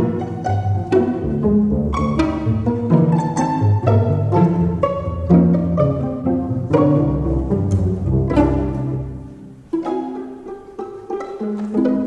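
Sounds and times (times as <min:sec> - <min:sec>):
low sustained cello and bass: 0:00.0 - 0:12.0
plucked string notes: 0:00.0 - 0:12.0.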